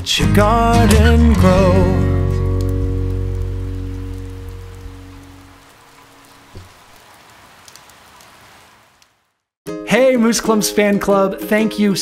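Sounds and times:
steady rain: 0:00.7 - 0:09.4
soft thump: 0:06.5 - 0:06.7.

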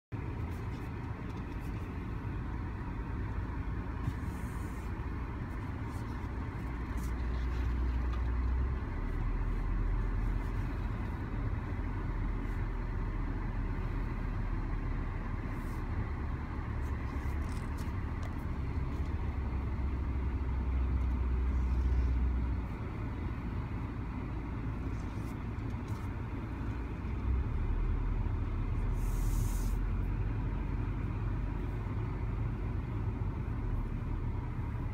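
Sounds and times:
car engine and road rumble: 0:00.0 - 0:34.9.

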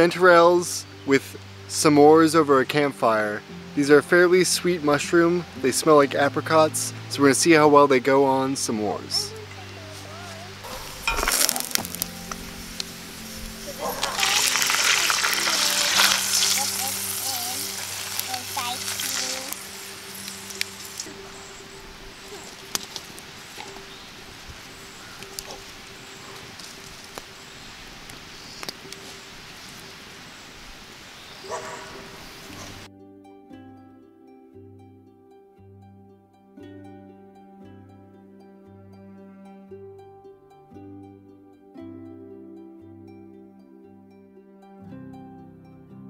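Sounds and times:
soft background music: 0:00.0 - 0:29.8, 0:31.4 - 0:46.0
campfire crackling and popping: 0:09.4 - 0:31.6.

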